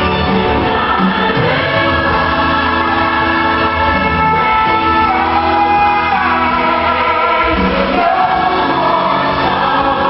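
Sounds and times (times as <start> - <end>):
church choir singing: 0.0 - 10.0
worship band playing: 0.0 - 10.0.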